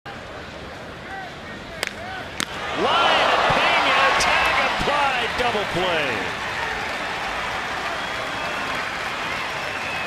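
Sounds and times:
bat cracking on ball: 1.8 - 2.6
crowd shouting and cheering: 2.1 - 10.0.

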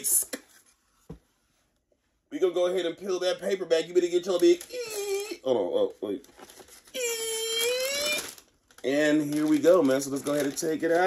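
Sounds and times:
man speaking: 2.3 - 4.7, 5.4 - 6.2, 8.8 - 11.0.

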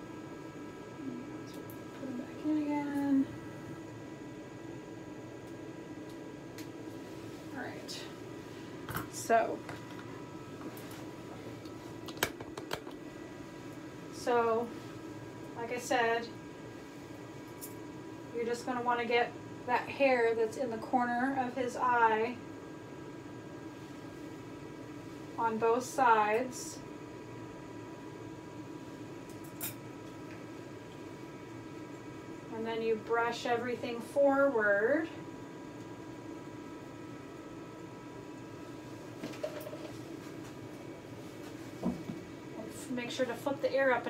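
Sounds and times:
ventilation fan humming: 0.0 - 44.0.

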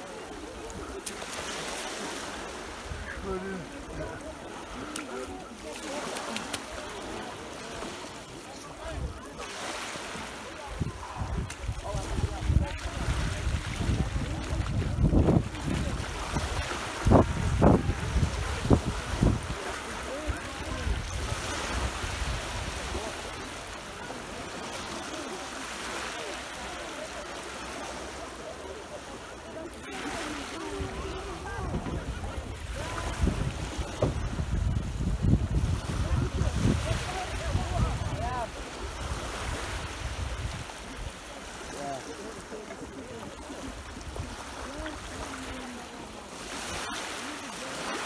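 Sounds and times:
sea waves breaking on shore: 0.0 - 48.0
wind buffeting microphone: 10.7 - 19.6, 30.7 - 41.0.

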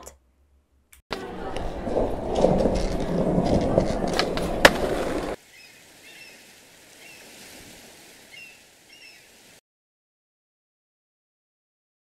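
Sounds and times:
skateboard clack: 1.1 - 5.4
skateboard wheels rolling: 1.1 - 5.4.

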